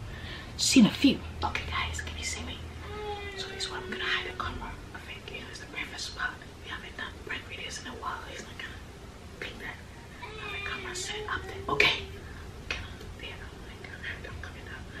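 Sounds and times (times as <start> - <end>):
woman whispering: 0.6 - 15.0.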